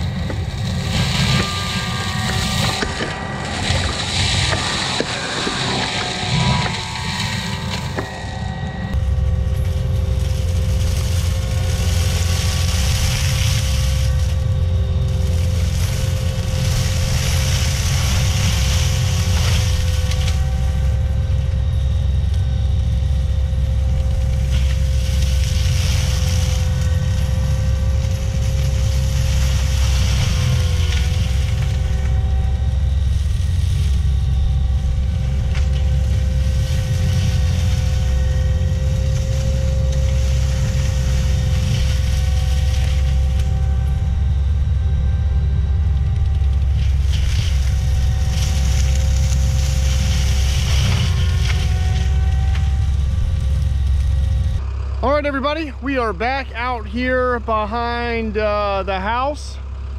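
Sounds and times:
diesel engine under load: 0.0s - 59.9s
mulcher shredding brush: 0.0s - 59.9s.

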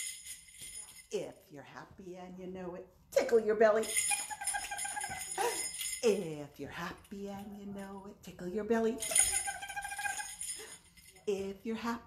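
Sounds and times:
jingle bells shaken: 0.0s - 1.5s, 3.6s - 12.0s.

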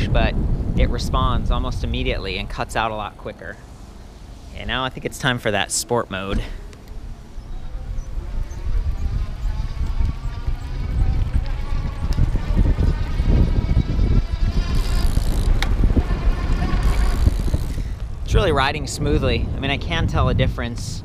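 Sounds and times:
wind rumbling on microphone: 0.0s - 21.0s
faint electric motor whine: 6.0s - 18.2s.

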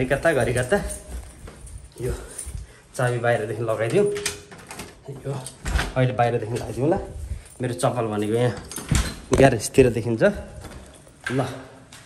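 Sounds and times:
person speaking indoors: 0.0s - 11.9s.

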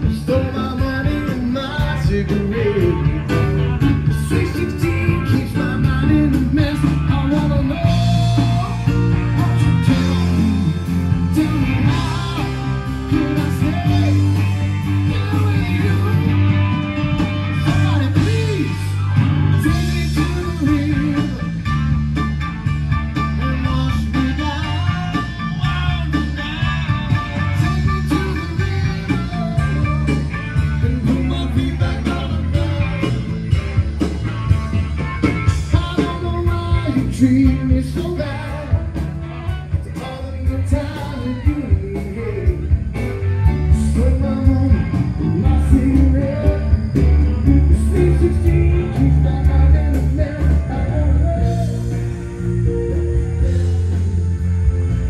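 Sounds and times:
person singing: 0.0s - 22.3s, 23.1s - 33.6s, 35.2s - 54.0s
live band playing: 0.0s - 55.0s
steady bass line: 0.0s - 55.0s.

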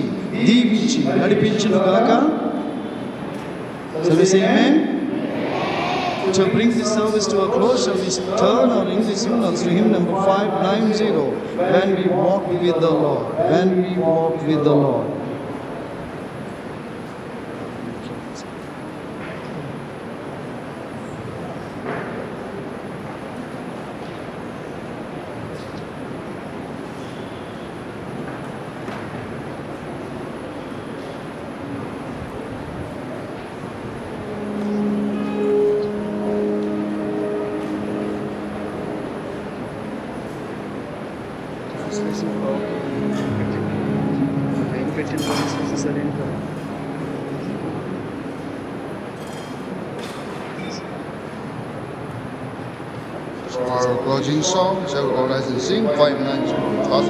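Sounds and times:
keyboard playing held chords: 0.0s - 17.8s, 29.4s - 57.0s
room noise: 0.0s - 57.0s.

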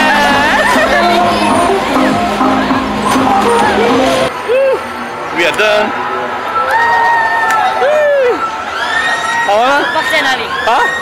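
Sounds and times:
loud music: 0.0s - 4.3s
people's voices: 0.0s - 6.0s
bumper cars running: 0.0s - 6.7s.

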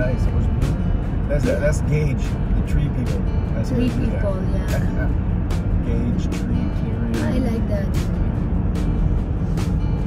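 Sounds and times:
car engine and road rumble: 0.0s - 10.0s
music with percussive hits: 0.0s - 10.0s.

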